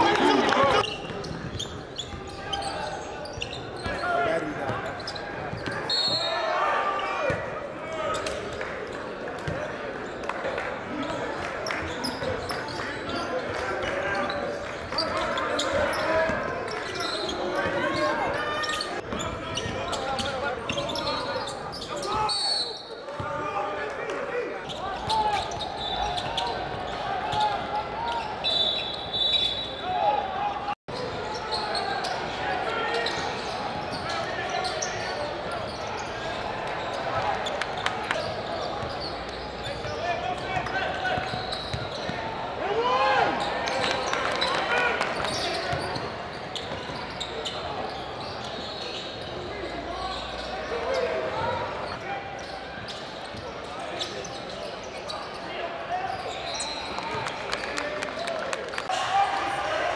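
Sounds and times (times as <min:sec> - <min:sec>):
sneakers squeaking: 0:00.0 - 0:06.5, 0:11.0 - 0:23.4, 0:24.6 - 0:30.3, 0:30.9 - 0:57.9
voices of players and spectators: 0:00.0 - 0:59.9.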